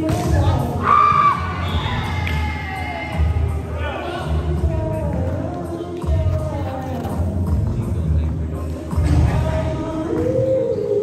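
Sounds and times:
background music: 0.0 - 11.0
players shouting and cheering: 0.2 - 4.8.

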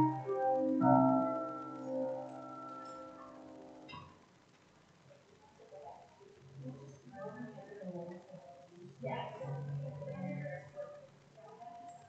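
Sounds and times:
held keyboard chord: 0.0 - 3.9
faint voices talking: 5.2 - 12.0.

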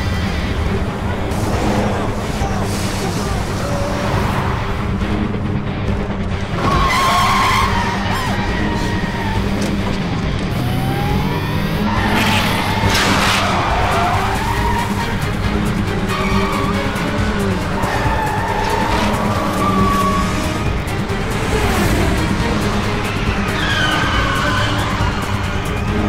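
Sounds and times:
background music: 0.0 - 26.0
car engines revving: 0.0 - 26.0
tyres skidding on gravel: 11.8 - 26.0.

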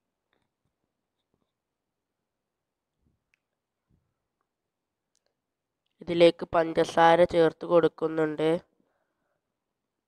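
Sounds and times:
person talking: 6.0 - 8.6.

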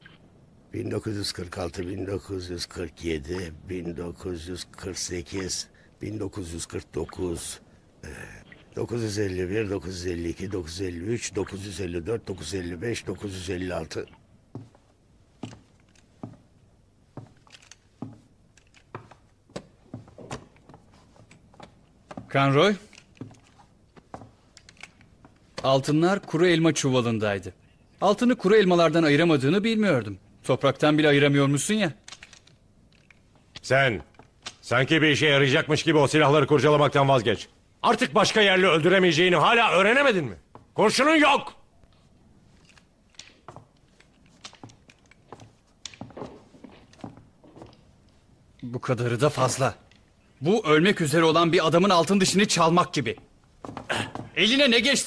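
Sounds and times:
light footsteps on wooden floor: 14.5 - 22.4, 43.4 - 48.3, 53.2 - 54.4
handling knocks and clicks: 14.5 - 26.5, 32.0 - 34.7, 41.9 - 48.7, 53.2 - 54.4.

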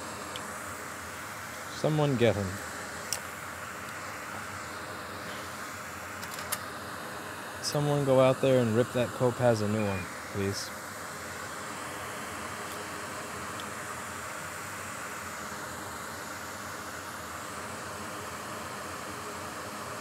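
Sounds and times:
fan blowing air: 0.0 - 20.0.

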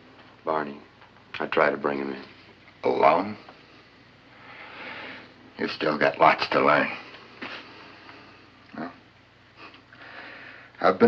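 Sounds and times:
background hiss and hum: 0.0 - 11.0.

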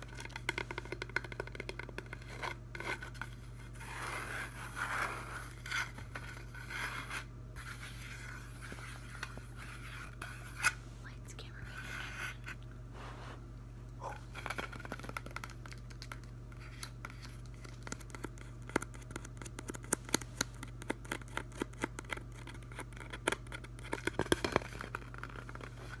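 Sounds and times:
scratching and rubbing on foam: 2.0 - 10.7.

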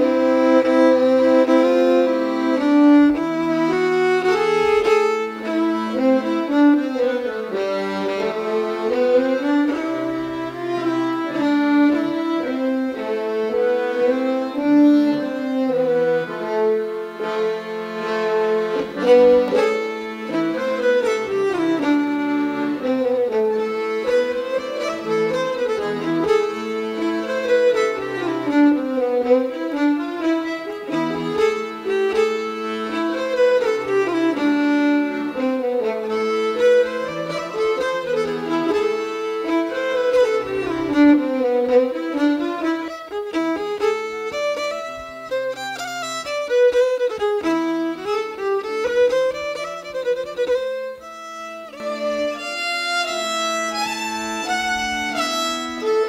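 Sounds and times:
button accordion: 0.0 - 56.0
fiddle melody: 0.0 - 56.0.

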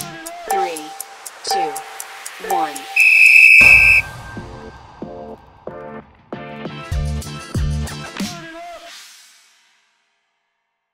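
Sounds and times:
music: 0.0 - 3.1, 3.8 - 10.9
whistle blast: 2.8 - 4.7.

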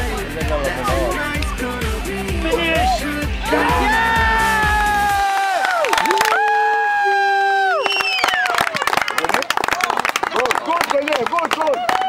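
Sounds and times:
pop song with steady beat: 0.0 - 5.2
children cheering: 2.8 - 10.6, 11.6 - 12.0.

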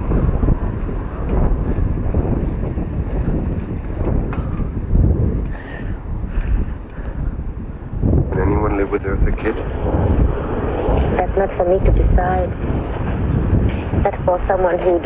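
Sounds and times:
wind rumbling over microphone: 0.0 - 15.0.

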